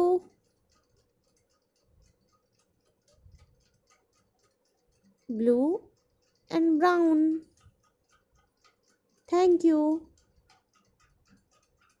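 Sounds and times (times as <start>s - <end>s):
light rapid ticks: 0.0s - 12.0s.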